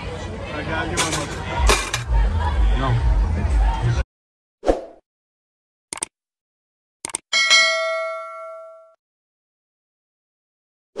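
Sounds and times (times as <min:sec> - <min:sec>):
notification bell ding: 0:07.4 - 0:09.0.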